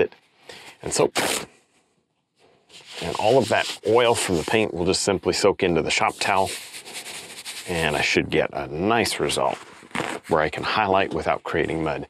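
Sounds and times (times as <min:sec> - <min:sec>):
paper towel rubbing on canvas: 0:02.7 - 0:08.2.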